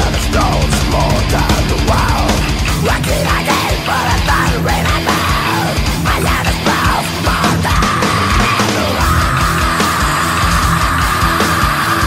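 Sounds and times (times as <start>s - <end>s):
heavy metal band playing: 0.0s - 12.0s
rapid bass drum beats: 0.0s - 12.0s.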